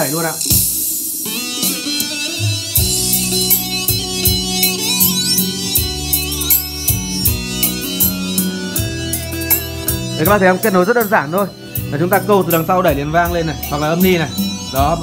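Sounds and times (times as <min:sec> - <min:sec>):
guitar and drum music over speakers: 0:00.0 - 0:15.0.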